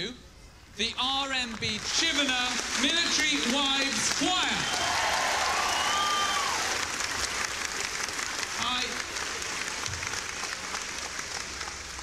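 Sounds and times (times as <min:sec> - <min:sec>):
audience applauding: 0:01.5 - 0:12.0
person whooping: 0:04.7 - 0:06.7.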